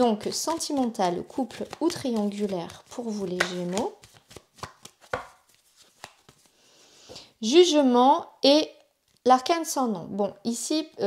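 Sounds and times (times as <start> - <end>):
cards tapping and clicking: 0.3 - 6.5.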